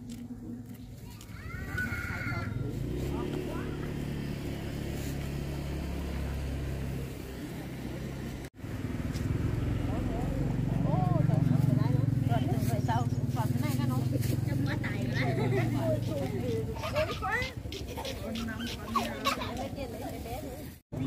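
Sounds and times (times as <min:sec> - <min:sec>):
people talking: 0:00.0 - 0:04.0, 0:09.4 - 0:21.0
vehicle engine idling: 0:01.8 - 0:20.0.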